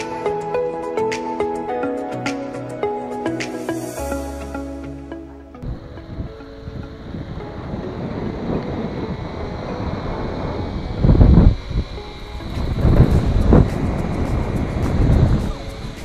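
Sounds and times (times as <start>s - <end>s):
wind buffeting microphone: 5.6s - 16.0s.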